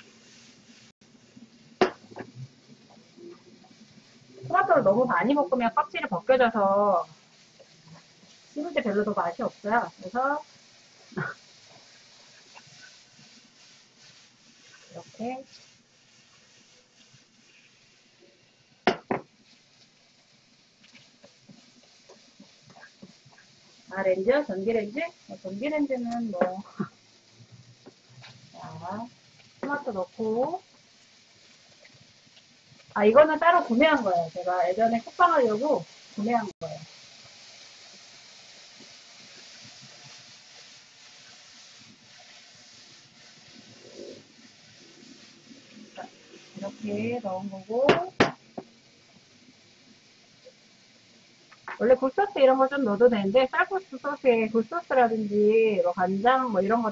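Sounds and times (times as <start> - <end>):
food sizzling in wok: 0.0 - 56.9
wok set down on a hob: 18.8 - 19.3.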